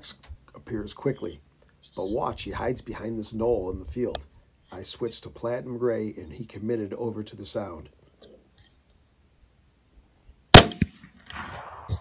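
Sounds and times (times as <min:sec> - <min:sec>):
rifle shot: 0:10.5 - 0:12.0
echo: 0:10.6 - 0:12.0
weaker crack: 0:10.6 - 0:12.0.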